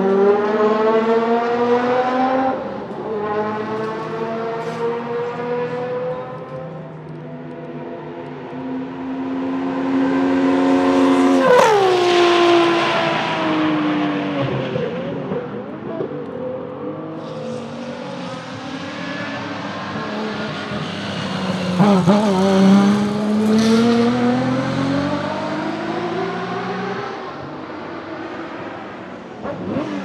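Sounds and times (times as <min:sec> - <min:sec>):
race car engine passing at high revs: 0:00.0 - 0:30.0.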